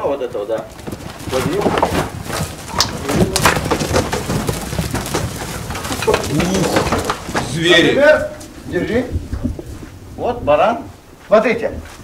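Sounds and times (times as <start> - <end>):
hooves knocking against wood: 0.0 - 10.0
low cooing calls: 5.4 - 10.2.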